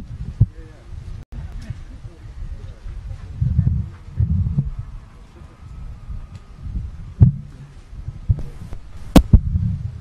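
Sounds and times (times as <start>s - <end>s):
microphone bumped and buffeted: 0.0s - 5.0s, 5.7s - 10.0s.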